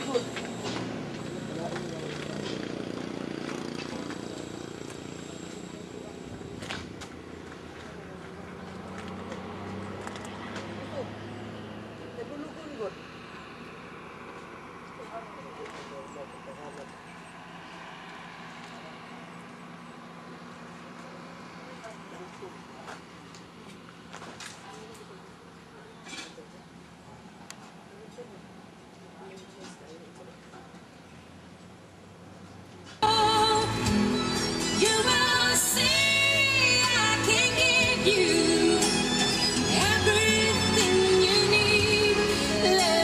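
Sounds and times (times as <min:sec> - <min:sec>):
faint indistinct voices: 0:14.4 - 0:31.8.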